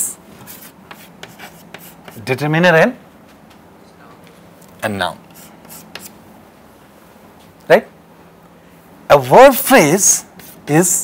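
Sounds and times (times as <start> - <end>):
chalk tapping and scraping on chalkboard: 0.4 - 2.4, 5.3 - 6.2, 10.3 - 10.9.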